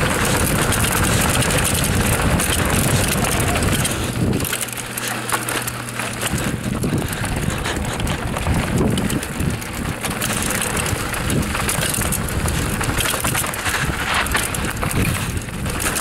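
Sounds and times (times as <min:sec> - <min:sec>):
bike frame rattling: 0:00.0 - 0:16.0
tyres on dirt: 0:00.0 - 0:16.0
wind on microphone: 0:06.2 - 0:16.0.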